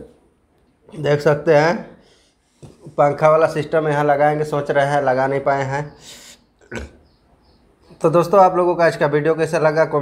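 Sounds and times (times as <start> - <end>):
person breathing: 2.0 - 2.8, 6.0 - 6.5.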